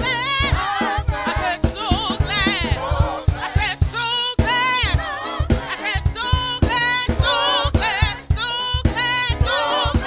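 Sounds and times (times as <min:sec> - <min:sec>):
band low beat: 0:00.0 - 0:10.0
gospel singing through microphones: 0:00.0 - 0:10.0.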